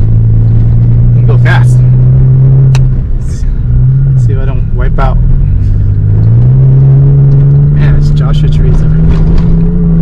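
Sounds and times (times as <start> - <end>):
truck engine accelerating: 0.0 - 10.0.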